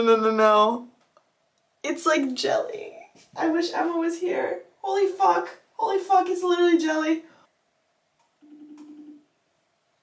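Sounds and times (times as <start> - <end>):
phone ringing tone: 8.4 - 9.3.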